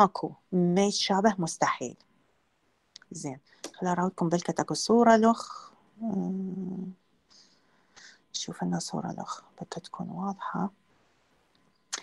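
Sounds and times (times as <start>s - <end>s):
woman speaking: 0.0s - 2.0s, 3.0s - 7.0s, 8.0s - 10.8s.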